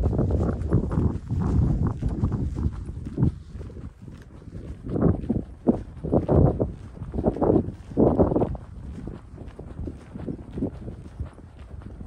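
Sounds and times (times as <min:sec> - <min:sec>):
footsteps on short grass: 0:00.0 - 0:12.0
wind buffeting microphone: 0:00.0 - 0:12.0.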